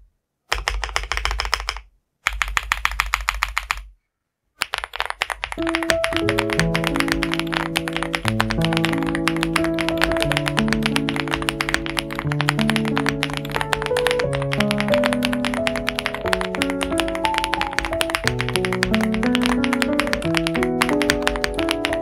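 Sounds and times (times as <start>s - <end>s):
mechanical keyboard typing: 0.5s - 3.9s, 4.6s - 22.0s
background music: 5.6s - 22.0s.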